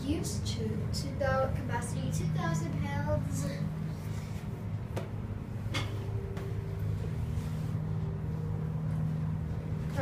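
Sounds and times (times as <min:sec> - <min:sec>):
elevator low hum: 0:00.0 - 0:10.0.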